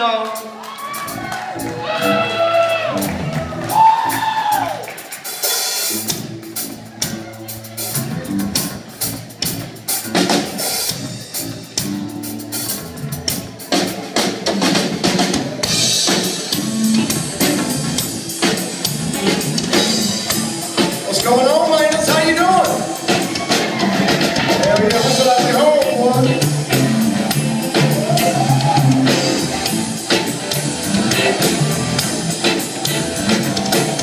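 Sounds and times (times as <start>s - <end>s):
drum kit beat: 0.0s - 34.0s
live rock band playing: 0.0s - 34.0s.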